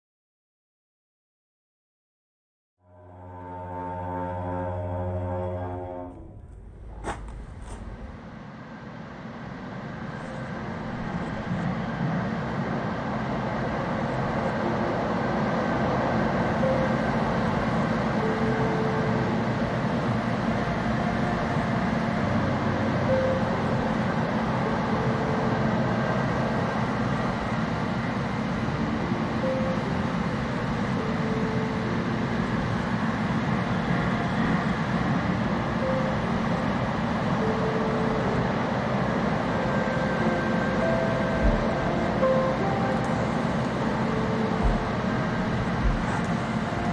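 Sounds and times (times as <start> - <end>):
light-rail train running rumble: 2.9 - 46.9.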